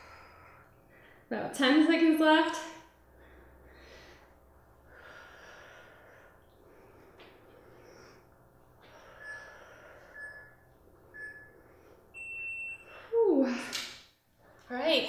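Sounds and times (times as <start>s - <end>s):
woman breathing hard: 0.0s - 1.3s, 2.9s - 14.6s.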